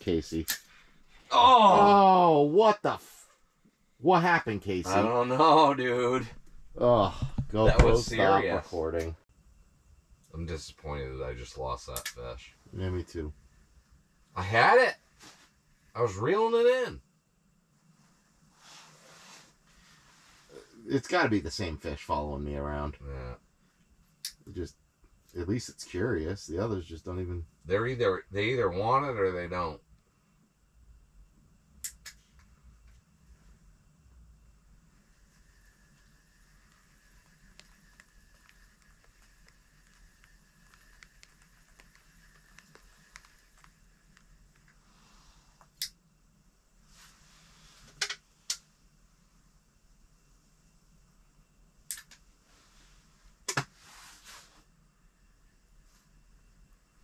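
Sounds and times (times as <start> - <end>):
low steady hum: 0.0 - 57.0.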